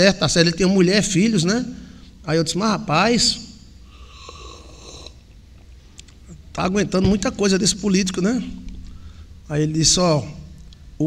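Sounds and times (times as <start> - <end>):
man slurping from a mug: 4.0 - 5.4.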